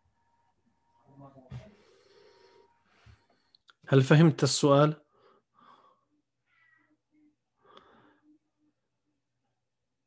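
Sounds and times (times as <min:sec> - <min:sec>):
faint breath: 0:01.6 - 0:03.6, 0:05.1 - 0:07.0, 0:07.6 - 0:08.5.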